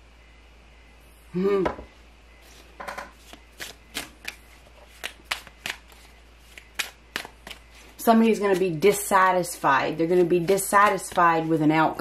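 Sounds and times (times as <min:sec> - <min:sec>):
cards being shuffled: 0:02.4 - 0:11.6.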